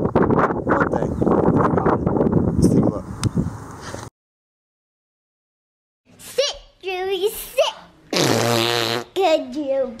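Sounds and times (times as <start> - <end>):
comic fart sound: 8.1 - 9.2.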